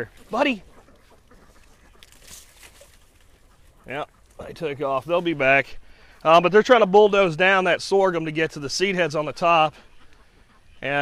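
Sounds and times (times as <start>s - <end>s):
rustling of leaves and stalks: 0.0s - 6.3s.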